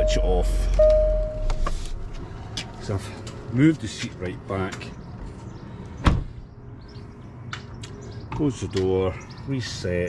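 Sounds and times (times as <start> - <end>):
car door shutting with thud: 6.0 - 6.3.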